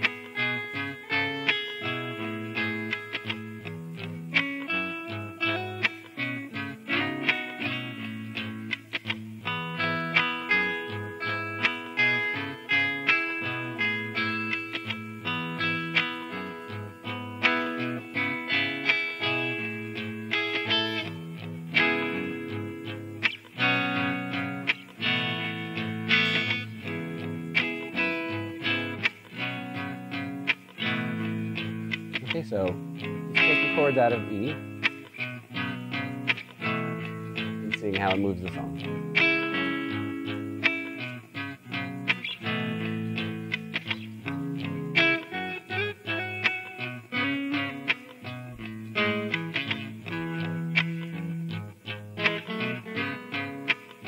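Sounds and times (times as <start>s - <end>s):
percussive guitar body slaps: 0.0s - 4.7s, 46.4s - 54.0s
live guitar notes: 0.0s - 54.0s
looped guitar groove: 0.0s - 54.0s.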